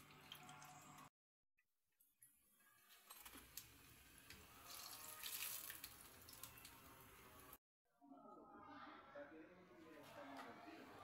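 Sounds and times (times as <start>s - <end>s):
oil sizzling in a frying pan: 2.2s - 7.6s.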